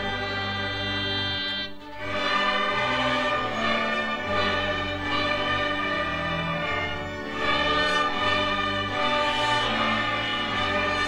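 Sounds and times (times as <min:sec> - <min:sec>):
string orchestra playing slowly: 0:00.0 - 0:11.0.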